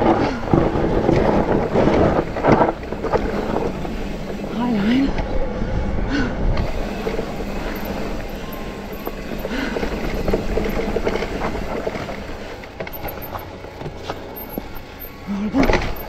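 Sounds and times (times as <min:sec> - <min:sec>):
bike knocks and rattles: 0:00.0 - 0:04.5, 0:06.6 - 0:16.0
tyres rumbling over dirt: 0:00.0 - 0:16.0.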